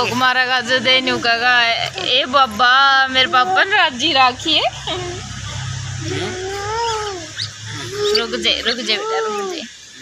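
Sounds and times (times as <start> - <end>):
low hum: 2.4 - 8.7
whiny voice: 3.0 - 9.7.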